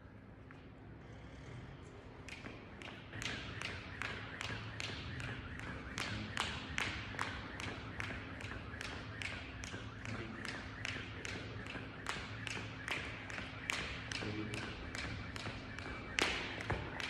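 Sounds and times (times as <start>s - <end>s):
jump rope slapping rubber floor: 2.2s - 17.0s.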